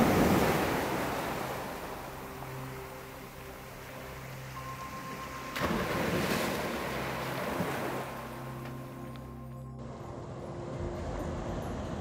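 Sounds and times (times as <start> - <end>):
waves breaking: 0.0 - 9.2
faint background drone: 0.0 - 12.0.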